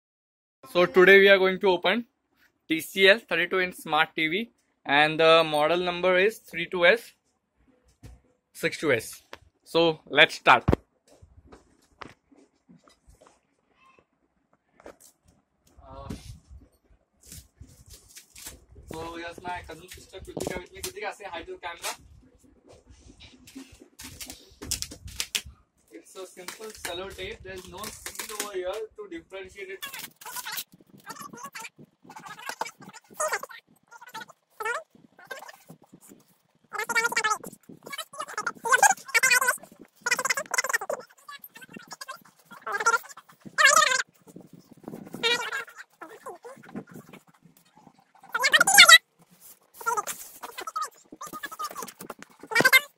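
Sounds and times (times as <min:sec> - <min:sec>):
tape ripping: 0:26.4 - 0:28.6, 0:29.8 - 0:31.1
high-pitched wavering vocal cries: 0:29.8 - 0:36.0, 0:36.7 - 0:44.1, 0:45.0 - 0:47.3, 0:48.2 - 0:49.0, 0:49.8 - 0:52.9
tape scratching on cardboard: 0:29.8 - 0:52.9.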